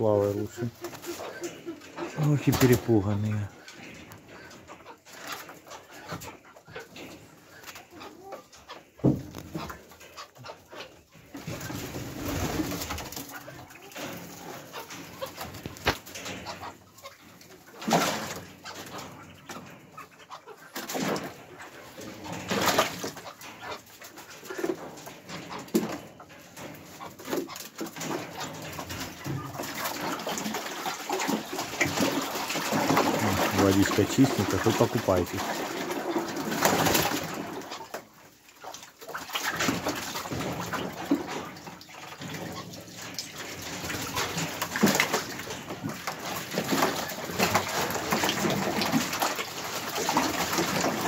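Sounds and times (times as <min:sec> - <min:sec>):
ducks splashing in water: 0:00.0 - 0:51.0.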